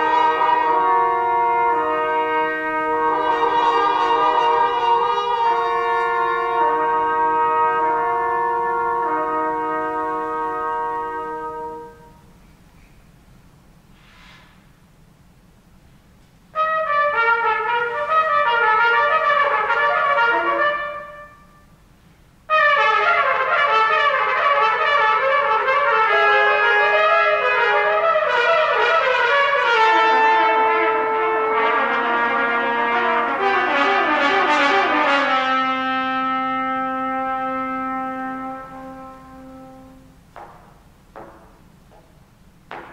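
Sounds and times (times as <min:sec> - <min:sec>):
trumpets playing chamber music: 0:00.0 - 0:12.4, 0:16.5 - 0:21.9, 0:22.5 - 0:40.9.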